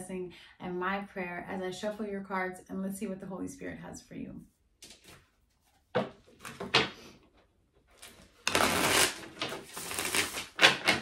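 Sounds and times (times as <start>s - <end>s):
cards being riffle-shuffled: 8.0s - 11.0s.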